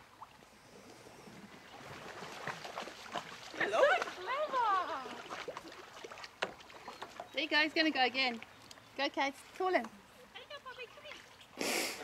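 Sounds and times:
kayak paddles splashing water: 1.0 - 8.5, 10.4 - 11.6.

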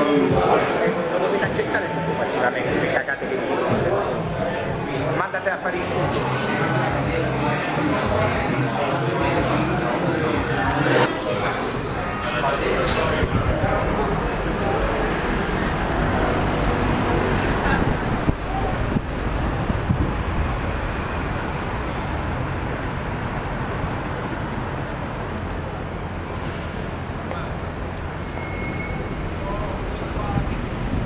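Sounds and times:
people's voices: 0.0 - 31.0
road traffic passing: 0.0 - 31.0.

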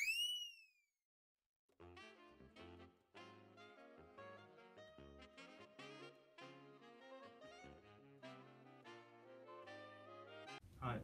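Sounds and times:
rising whistle-like tone: 0.0 - 0.9
saxophone background music: 1.7 - 10.6.

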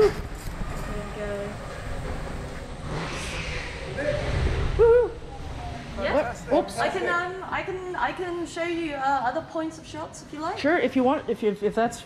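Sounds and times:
kart passing by: 0.0 - 7.1
go-kart engines rumbling: 0.0 - 7.7.

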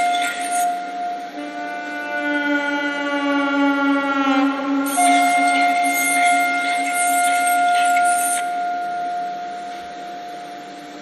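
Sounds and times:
held clarinet and saxophone notes: 0.0 - 10.0
noisy electronic hiss: 0.0 - 11.0.

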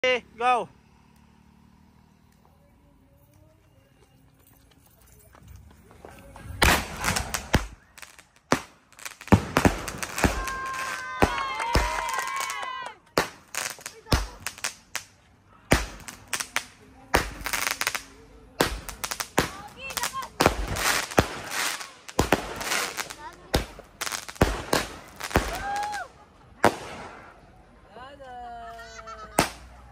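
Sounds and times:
firework launch reports: 6.4 - 15.1, 15.7 - 27.5
crackling firework bursts: 6.5 - 27.6, 29.3 - 29.9.

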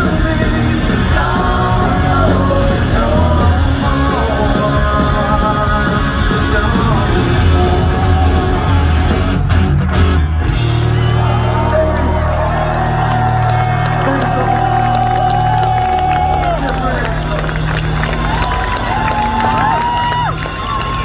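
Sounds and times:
live punk rock band: 0.0 - 21.0.

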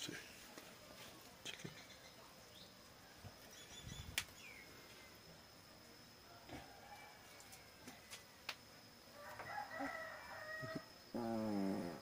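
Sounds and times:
rooster crowing: 9.1 - 10.9.

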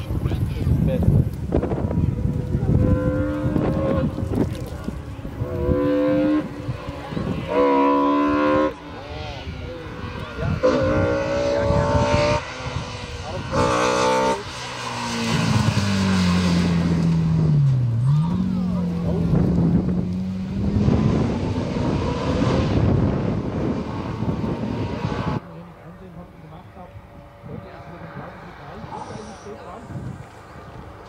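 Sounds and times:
race car engine revving: 2.6 - 31.0.

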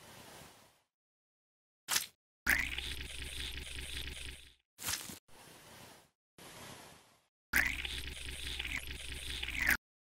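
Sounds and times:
syringe sucking fluid: 7.6 - 9.8.

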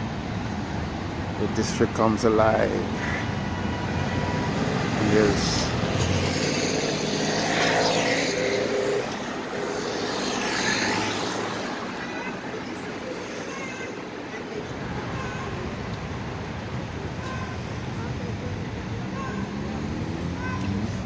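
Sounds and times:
cars passing close by: 0.0 - 21.0
distant street traffic: 0.0 - 21.0.

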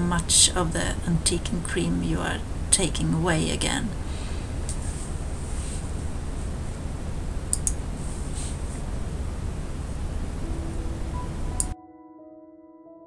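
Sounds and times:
low rumble and hiss: 0.0 - 11.8
wipe rubbing on painted surface: 4.8 - 6.1, 8.0 - 8.8
sharp clicks: 7.5 - 7.8
soft piano music: 10.0 - 13.0.

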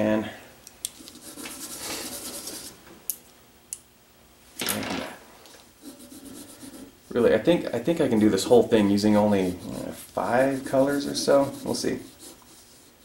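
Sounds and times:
marker scratching on paper: 1.0 - 2.7, 5.8 - 7.0, 9.2 - 13.0.

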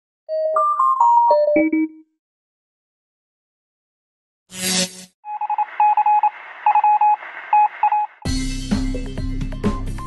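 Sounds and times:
telephone beep tones: 5.3 - 8.2
intro music with strong beat: 8.2 - 10.0.

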